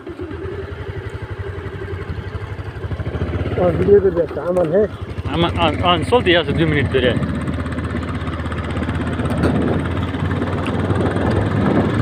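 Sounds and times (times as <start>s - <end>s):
motorcycle engine running: 0.0s - 12.0s
man talking: 3.5s - 7.2s.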